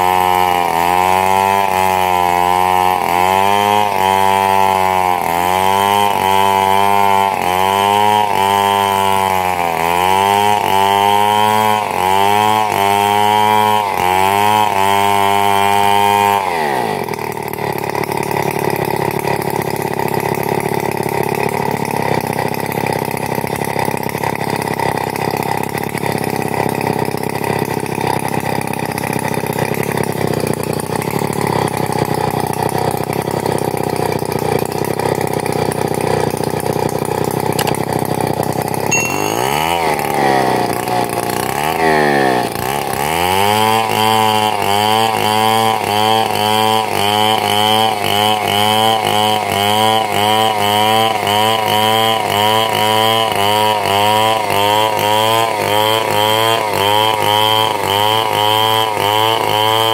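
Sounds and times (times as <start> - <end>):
chainsaw ripping a log: 0.0 - 59.9.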